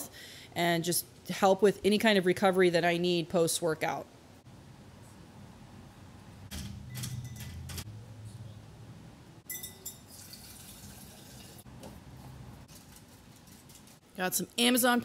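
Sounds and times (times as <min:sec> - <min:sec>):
water pouring into glass: 0:09.6 - 0:11.6.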